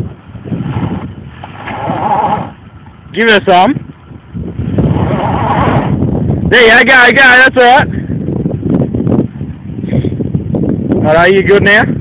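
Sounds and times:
rough uneven vehicle noise: 0:00.0 - 0:03.0, 0:04.0 - 0:06.0.

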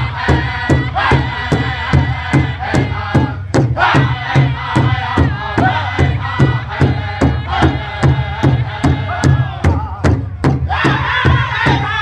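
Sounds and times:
men singing together: 0:00.0 - 0:10.0, 0:10.6 - 0:12.0
big drum beats: 0:00.0 - 0:12.0.

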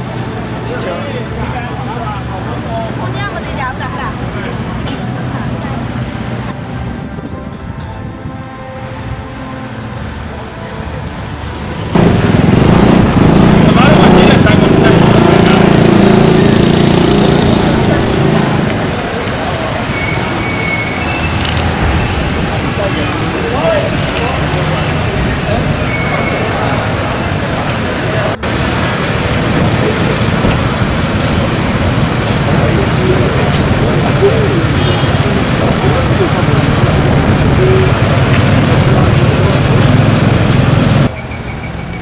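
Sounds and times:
crowd talking: 0:00.0 - 0:07.6, 0:10.5 - 0:28.6, 0:29.2 - 0:41.1
low engine-like drone: 0:00.0 - 0:42.0
vehicles passing slowly: 0:00.0 - 0:42.0
short high whistle tones: 0:16.4 - 0:21.4.

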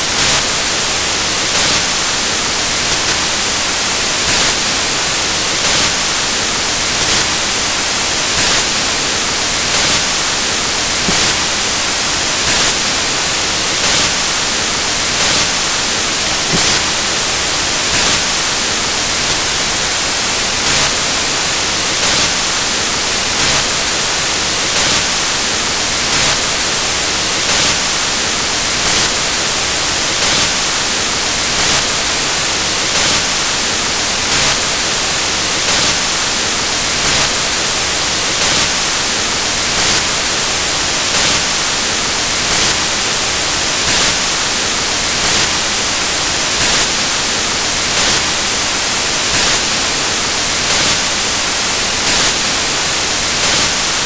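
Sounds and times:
static hiss: 0:00.0 - 0:54.0.

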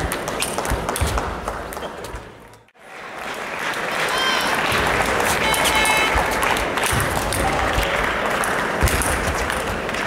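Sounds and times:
spectators applauding: 0:02.8 - 0:10.0.

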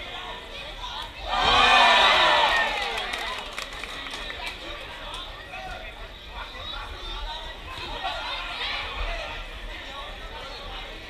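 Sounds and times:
crowd cheering and shouting: 0:01.2 - 0:03.4.

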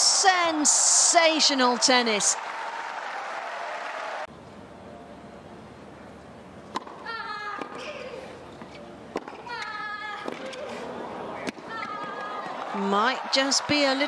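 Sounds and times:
crowd applause: 0:00.1 - 0:04.3, 0:12.1 - 0:14.0
racket striking tennis ball: 0:06.7 - 0:07.8.

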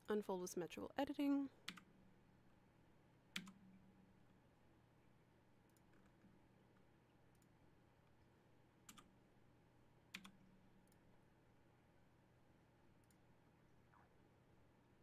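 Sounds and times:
computer mouse clicks: 0:01.6 - 0:01.9, 0:03.3 - 0:03.6, 0:05.6 - 0:07.6, 0:08.8 - 0:09.1, 0:10.1 - 0:11.1, 0:13.0 - 0:13.3.

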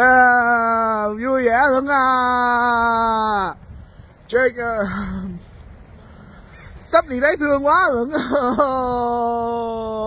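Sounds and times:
person speaking: 0:00.0 - 0:05.9, 0:06.5 - 0:10.0.

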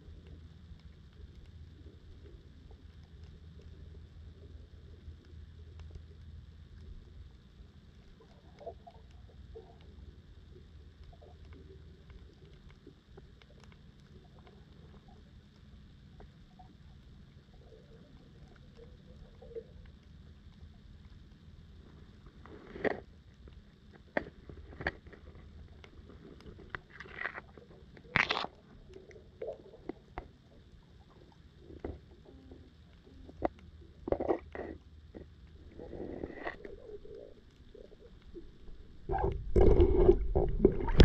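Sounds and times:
faint clicks: 0:00.0 - 0:41.0
low underwater rumble: 0:00.0 - 0:41.0.

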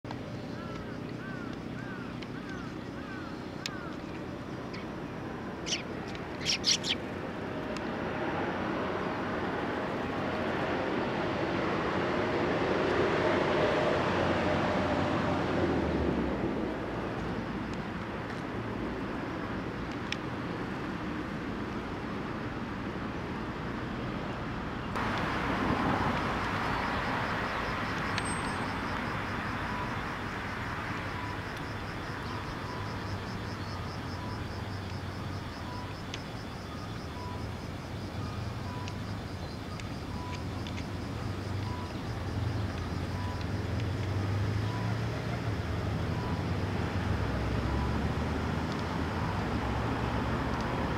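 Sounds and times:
road traffic going by: 0:00.0 - 0:50.9
sparrow chirps: 0:05.6 - 0:07.0.

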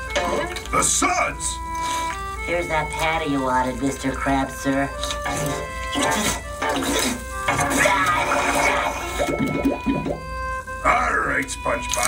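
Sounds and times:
cartoon background music: 0:00.0 - 0:12.0
watery bubbling effect: 0:05.4 - 0:10.3.

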